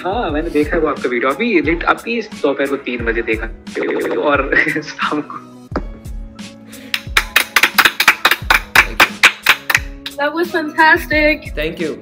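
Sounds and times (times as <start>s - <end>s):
people clapping: 6.9s - 10.2s.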